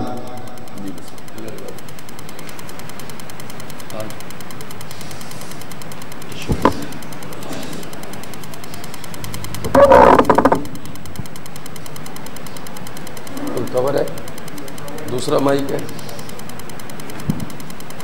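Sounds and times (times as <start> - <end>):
steady hiss: 0.0 - 18.0.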